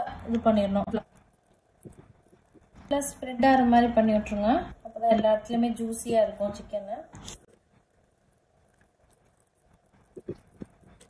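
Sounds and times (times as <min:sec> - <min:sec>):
soft low thumps: 0:10.0 - 0:11.0.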